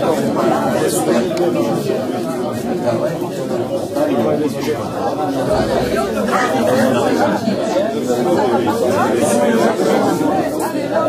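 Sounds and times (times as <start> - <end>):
indistinct chatter of many people: 0.0 - 11.0.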